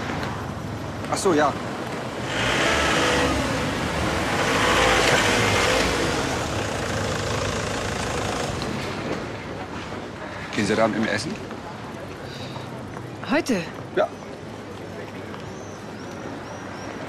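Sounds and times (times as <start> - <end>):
van engine running: 4.4 - 8.7.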